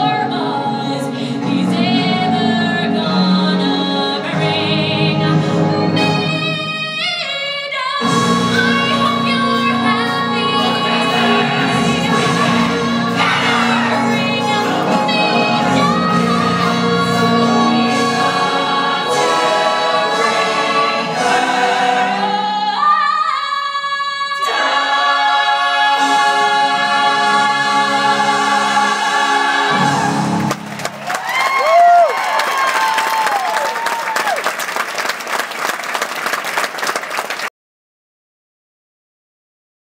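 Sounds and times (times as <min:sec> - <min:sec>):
orchestra and chorus closing chord: 0:08.0 - 0:22.8, 0:24.4 - 0:31.2
audience applause: 0:30.3 - 0:37.5
audience cheering whoops: 0:30.8 - 0:34.7.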